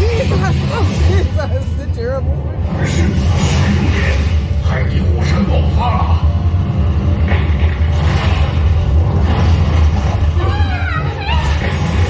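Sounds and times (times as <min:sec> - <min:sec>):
film soundtrack music: 0:00.0 - 0:12.0.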